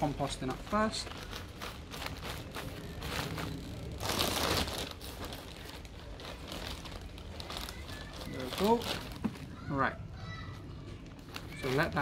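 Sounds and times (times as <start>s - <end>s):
compost crumbling: 0.0s - 9.7s
plastic bags crinkling: 0.0s - 9.8s, 11.0s - 12.0s.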